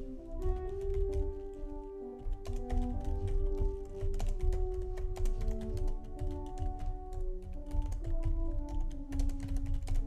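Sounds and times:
keyboard keys clicking: 0:00.0 - 0:10.0
soft background music: 0:00.0 - 0:10.0.

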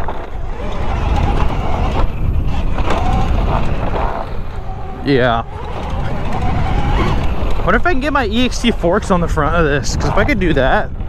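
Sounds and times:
tyres running over dirt: 0:00.0 - 0:10.2
wind on microphone: 0:00.0 - 0:11.0.

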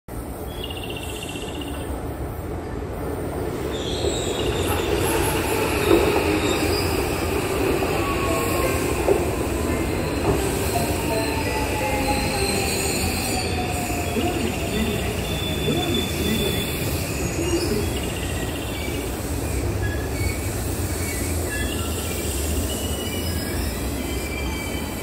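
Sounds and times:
train wheels rumbling: 0:01.1 - 0:25.0
train braking: 0:02.9 - 0:25.0.

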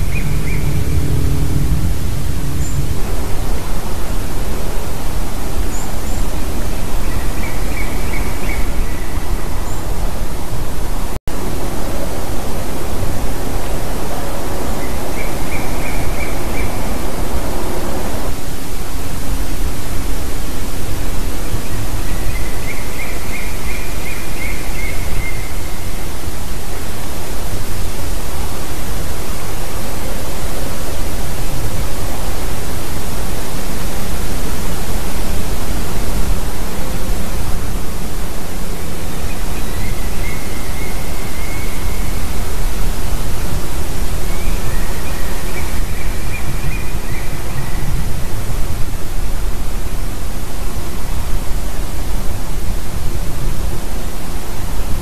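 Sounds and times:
bird calling: 0:00.0 - 0:04.1, 0:05.6 - 0:10.1, 0:14.1 - 0:18.2
wind noise on microphone: 0:00.0 - 0:55.0.

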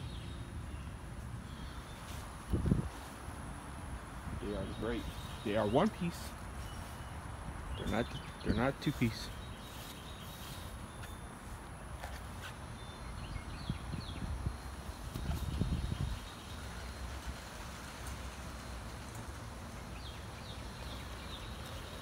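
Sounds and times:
footsteps on grass: 0:08.0 - 0:12.6.

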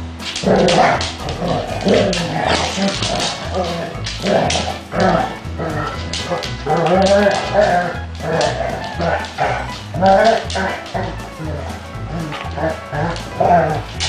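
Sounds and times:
background music with bass: 0:00.0 - 0:14.0
dogs growling and barking: 0:00.0 - 0:14.0.

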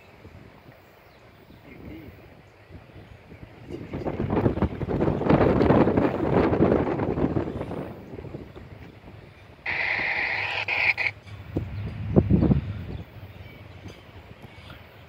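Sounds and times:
wind buffeting microphone: 0:00.2 - 0:15.0
locomotive air horn blast: 0:09.7 - 0:11.1.

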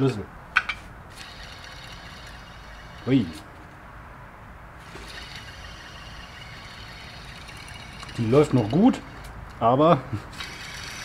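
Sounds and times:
pulley bearing whirring: 0:00.6 - 0:03.4, 0:04.8 - 0:09.5, 0:10.3 - 0:11.0.

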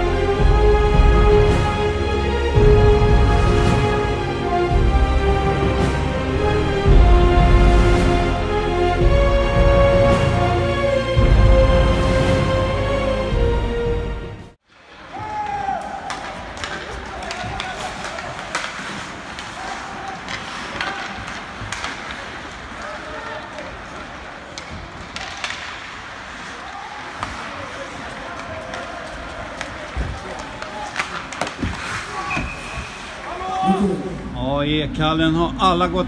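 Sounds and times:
sticks and puck clacking: 0:14.7 - 0:33.7
skates scraping on ice: 0:14.8 - 0:33.9
players and spectators calling out: 0:26.3 - 0:34.4.

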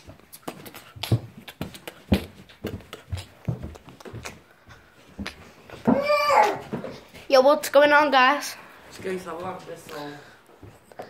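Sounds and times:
footsteps on floor: 0:00.0 - 0:07.3, 0:08.9 - 0:11.0.

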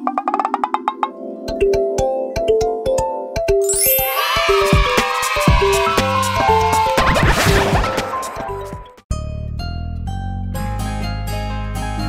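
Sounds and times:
cheerful jingle music: 0:01.5 - 0:09.0
shimmering chime: 0:03.6 - 0:05.8.

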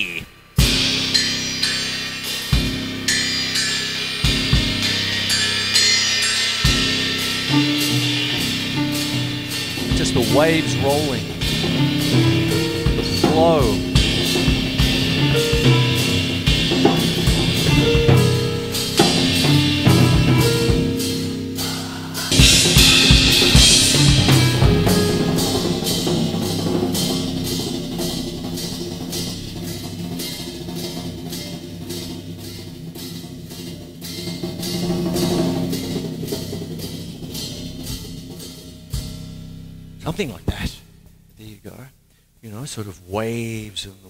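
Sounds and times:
drum kit toms and cymbals: 0:00.0 - 0:42.5
cymbal swell: 0:00.3 - 0:41.5
sustained harp notes: 0:00.6 - 0:33.0.

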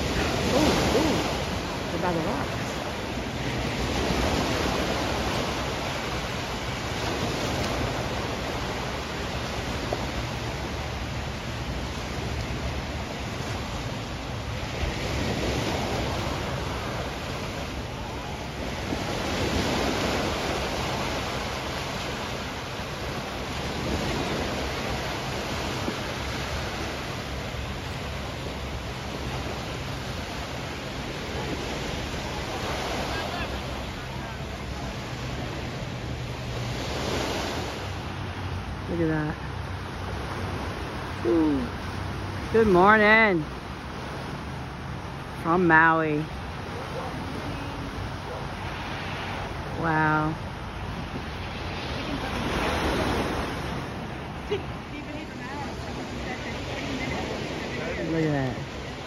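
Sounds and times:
small waves breaking on sand: 0:00.0 - 0:59.0.

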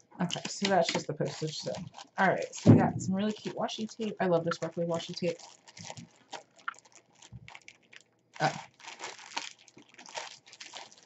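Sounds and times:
cellophane bag crinkling: 0:00.2 - 0:11.0.

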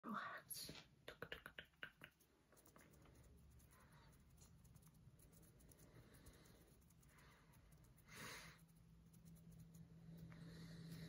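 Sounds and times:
soft whispering: 0:00.0 - 0:04.6
clicky mouth sounds: 0:01.1 - 0:02.3.

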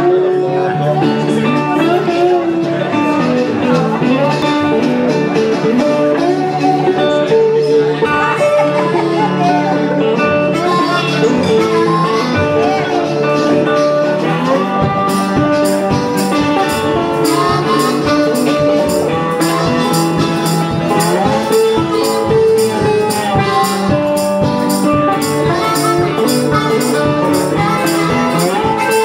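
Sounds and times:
blues harmonica: 0:00.0 - 0:29.0
fingerpicked resonator guitar: 0:00.0 - 0:29.0.

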